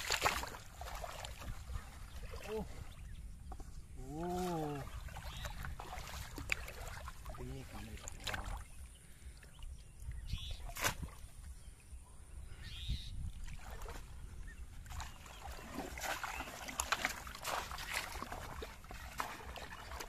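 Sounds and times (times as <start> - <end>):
water splashing: 0.0 - 3.0, 4.0 - 9.5, 13.4 - 20.0.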